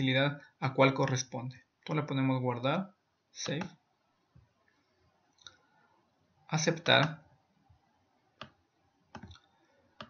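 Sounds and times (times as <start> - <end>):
computer mouse clicks: 8.4 - 10.0.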